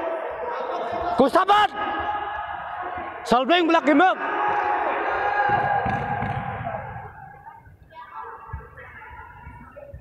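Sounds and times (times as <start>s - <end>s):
spectators shouting: 0.0s - 7.5s.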